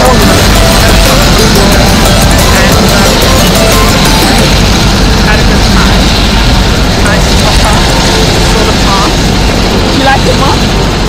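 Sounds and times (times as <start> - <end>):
faint voices: 0.0 - 11.0
helicopter rotor and engine: 0.0 - 11.0.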